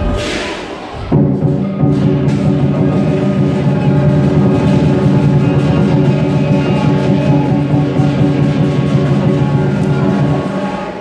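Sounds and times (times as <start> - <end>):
large drum beaten rapidly: 0.0 - 10.8
cymbals ringing: 0.0 - 11.0
gong: 0.0 - 11.0.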